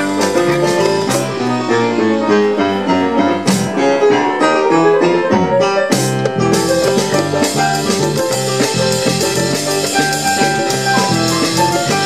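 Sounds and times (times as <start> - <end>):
keyboard piano solo: 0.0 - 12.0
live latin jazz band: 0.0 - 12.0.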